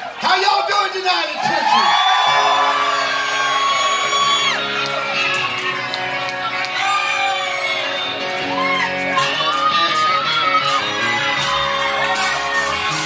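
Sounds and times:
crowd whooping and shouting: 0.0 - 13.0
live band with electric guitars: 1.4 - 13.0.

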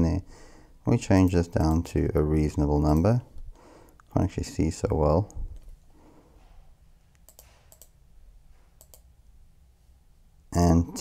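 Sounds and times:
computer mouse clicks: 7.2 - 8.0, 8.8 - 9.1.

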